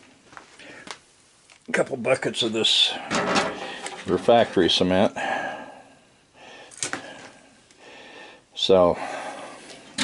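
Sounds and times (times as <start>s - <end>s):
plastic bucket handling noise: 3.1s - 4.8s.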